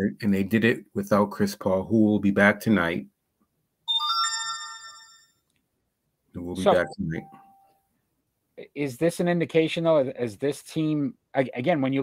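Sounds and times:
electronic notification chime: 0:03.9 - 0:05.2, 0:06.6 - 0:07.6.

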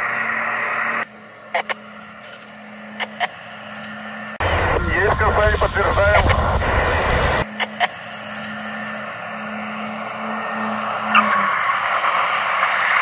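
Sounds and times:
low steady hum: 0:00.0 - 0:12.1
propeller engines droning: 0:00.0 - 0:13.0.

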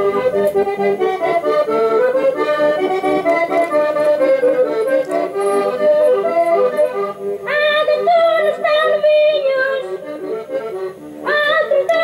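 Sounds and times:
accordion playing folk melody: 0:00.0 - 0:12.0.

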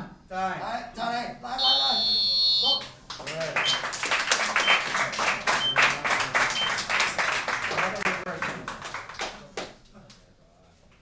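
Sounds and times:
electronic buzzer high tone: 0:01.6 - 0:02.9
crowd clapping: 0:03.1 - 0:10.2.

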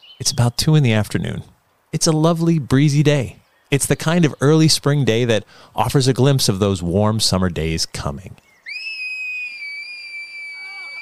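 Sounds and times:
woman screaming: 0:08.7 - 0:11.0.

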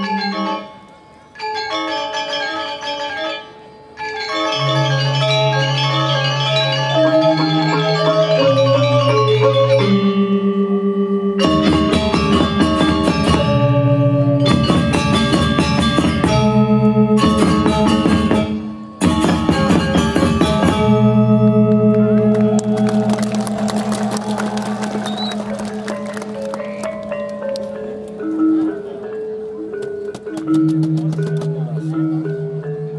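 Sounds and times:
gamelan metallophones and gongs: 0:04.0 - 0:10.3, 0:26.6 - 0:29.8, 0:31.6 - 0:32.9.

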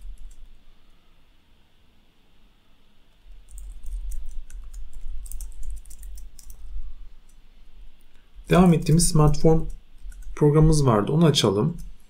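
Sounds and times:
rapid typing on keyboard: 0:00.0 - 0:00.6, 0:03.3 - 0:06.8, 0:08.5 - 0:10.9.

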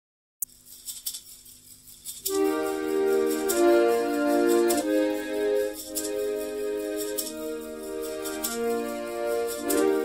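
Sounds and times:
light high rattling percussion: 0:00.4 - 0:10.0.

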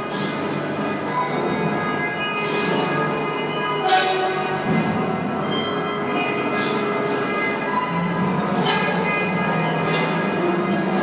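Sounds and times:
ringing bell tones: 0:05.4 - 0:07.0.

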